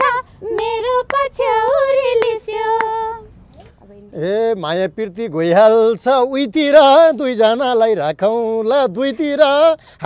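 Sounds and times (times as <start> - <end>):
woman singing unaccompanied: 0.0 - 4.2.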